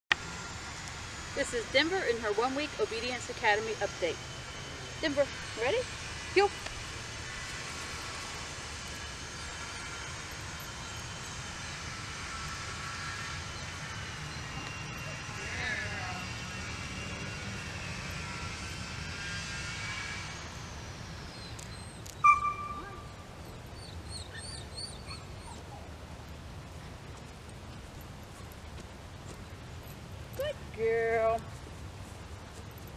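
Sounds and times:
distant aircraft engine drone: 0:00.1 - 0:32.9
high-pitched chirps: 0:22.2 - 0:23.2.

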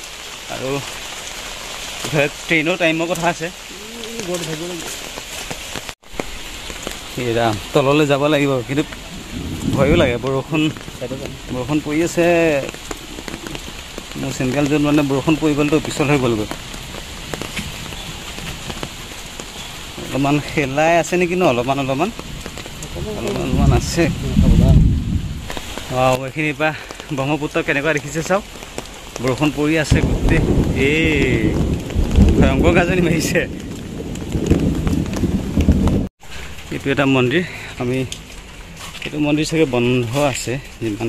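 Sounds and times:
rain falling: 0:00.0 - 0:41.0
person's voice: 0:02.0 - 0:05.1, 0:09.6 - 0:12.8, 0:13.4 - 0:16.6, 0:20.0 - 0:22.2, 0:22.8 - 0:24.9, 0:29.2 - 0:31.6, 0:32.2 - 0:33.7, 0:39.0 - 0:41.0
heavy low rumble: 0:07.6 - 0:12.7, 0:22.8 - 0:25.6.

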